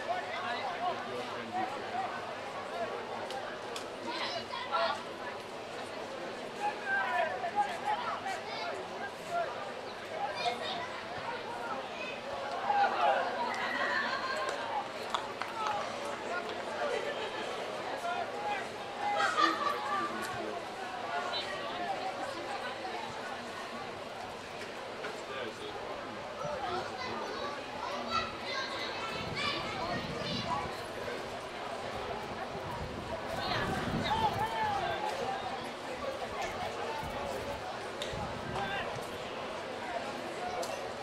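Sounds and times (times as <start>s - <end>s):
outdoor background noise: 0.0s - 41.0s.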